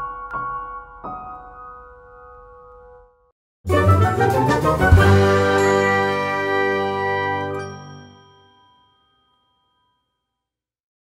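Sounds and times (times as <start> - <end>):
music jingle closing chord: 3.7 - 8.5.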